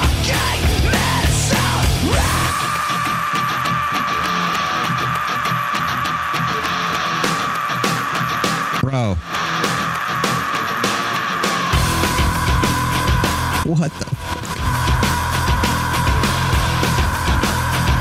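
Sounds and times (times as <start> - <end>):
heavy rock band playing: 0.0 - 18.0
man screaming high note: 0.2 - 13.7, 14.6 - 18.0.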